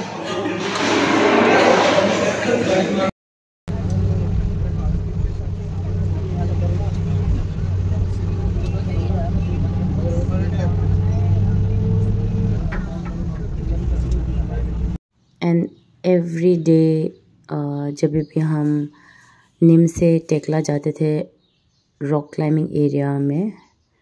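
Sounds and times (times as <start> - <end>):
bus engine droning: 3.7 - 15.0
passengers talking: 3.7 - 17.1.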